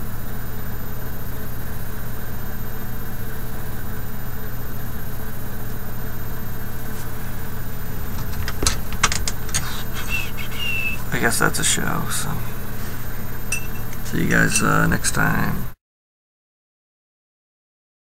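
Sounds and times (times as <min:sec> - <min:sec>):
low mechanical hum: 0:00.0 - 0:15.8
sharp clicks: 0:08.0 - 0:11.0
brief squeak: 0:09.6 - 0:11.0, 0:13.5 - 0:14.8.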